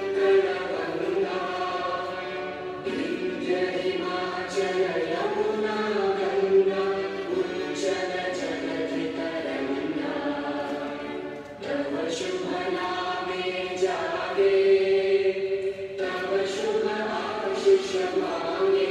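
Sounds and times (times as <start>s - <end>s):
choir singing long held notes: 0.0s - 18.9s.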